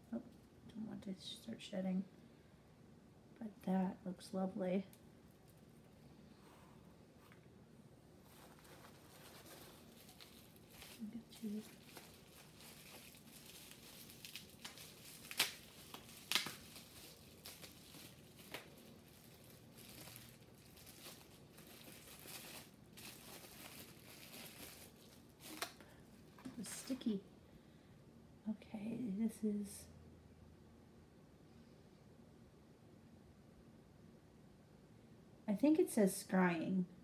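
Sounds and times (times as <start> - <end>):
paper packing filler rustling: 8.2 - 27.0
bubble wrap crackling: 8.2 - 27.2.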